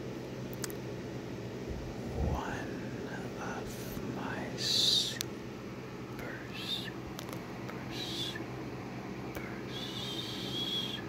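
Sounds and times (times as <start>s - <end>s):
long hissed consonant: 1.8s - 11.0s
slow breathy whispering: 1.9s - 5.2s, 6.2s - 7.0s, 7.7s - 8.5s, 9.3s - 11.0s.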